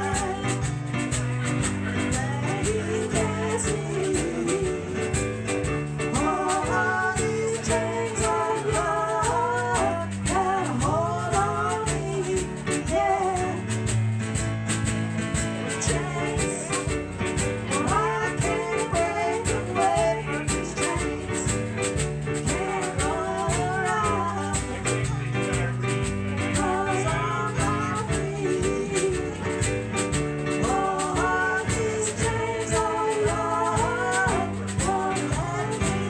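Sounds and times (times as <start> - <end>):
women singing: 0.0 - 14.1, 15.3 - 25.7, 26.3 - 36.0
drum kit beat: 0.0 - 36.0.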